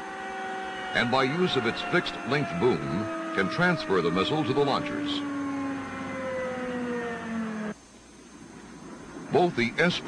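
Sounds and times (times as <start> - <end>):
machinery whining: 0.0 - 7.8.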